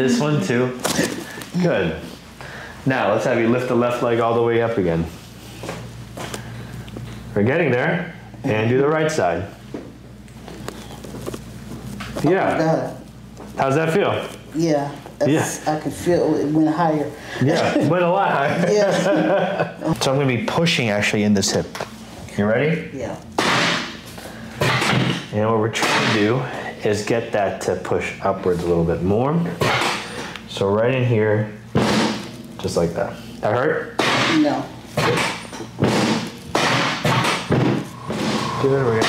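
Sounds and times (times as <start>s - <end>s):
steady low hum: 0.0s - 39.0s
thud of chiropractic thrust: 31.8s - 32.3s, 34.0s - 39.0s.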